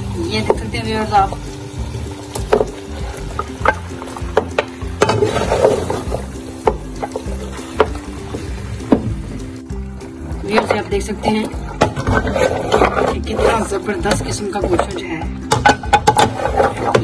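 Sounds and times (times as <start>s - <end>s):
background music with held tones: 0.0s - 17.0s
food sizzling: 0.0s - 17.0s
plate scraping metal pan: 5.0s - 6.1s, 11.8s - 17.0s.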